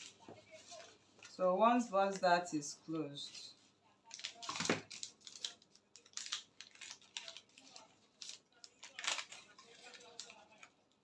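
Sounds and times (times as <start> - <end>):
paper rustling and crinkling: 0.0 - 2.2, 3.2 - 11.0.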